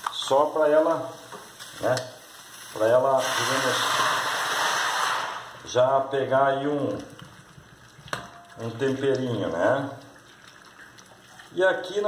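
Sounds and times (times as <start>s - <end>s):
water pouring onto potatoes: 1.8s - 5.8s, 6.6s - 12.0s.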